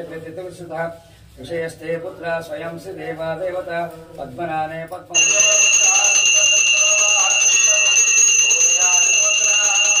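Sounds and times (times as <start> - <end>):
bell ringing continuously: 5.1 - 10.0.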